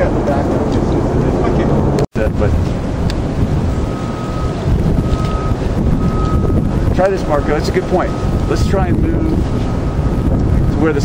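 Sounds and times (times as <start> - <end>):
wind buffeting microphone: 0.0 - 11.0
faint high beep: 3.8 - 6.6, 7.2 - 10.8.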